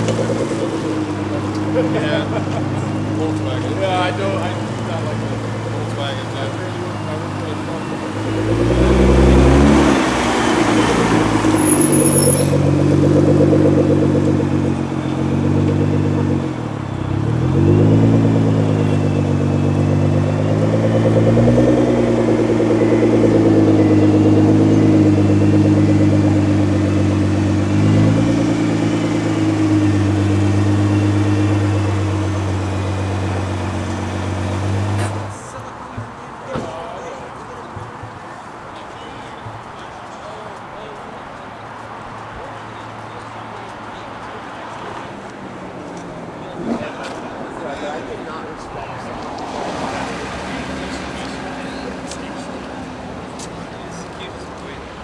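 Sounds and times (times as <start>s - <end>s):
car engine pulling away: 0.0s - 35.4s.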